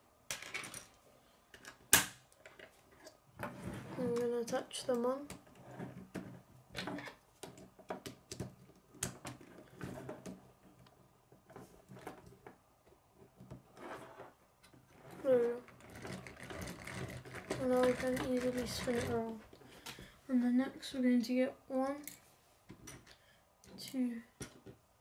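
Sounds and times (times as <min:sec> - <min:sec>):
plastic gears clattering: 0:15.2 - 0:19.4.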